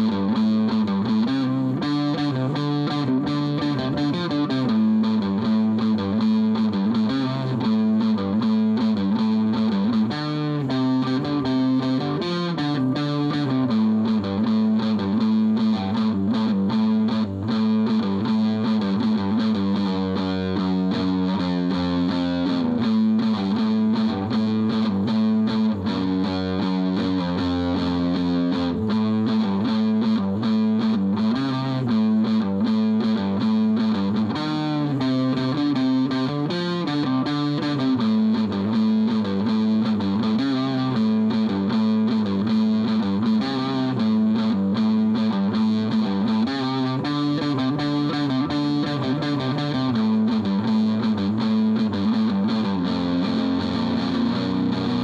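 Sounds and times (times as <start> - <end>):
distorted electric guitar chords: 0.0 - 55.0.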